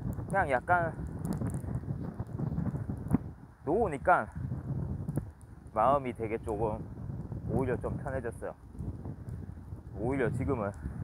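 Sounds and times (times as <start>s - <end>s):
wind buffeting microphone: 0.0s - 11.0s
faint ticks: 5.1s - 5.6s, 8.7s - 9.5s, 10.5s - 10.9s.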